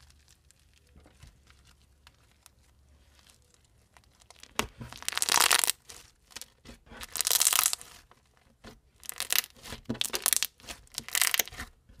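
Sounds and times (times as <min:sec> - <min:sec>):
slime crackling pops: 0:04.2 - 0:06.5, 0:07.1 - 0:07.9, 0:09.0 - 0:11.6.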